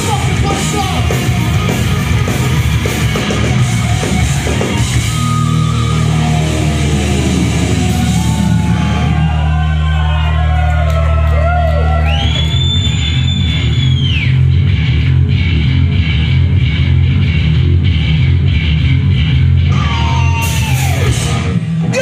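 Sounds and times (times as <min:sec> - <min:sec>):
thrash metal band playing: 0:00.0 - 0:09.9, 0:13.4 - 0:22.0.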